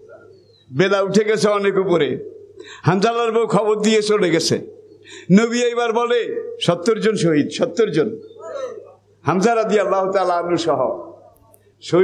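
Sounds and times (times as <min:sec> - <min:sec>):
man preaching through microphone: 0:00.0 - 0:12.0.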